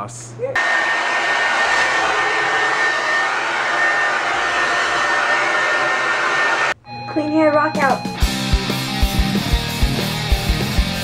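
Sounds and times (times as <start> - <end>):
hair dryer blowing air: 0.6 - 6.8.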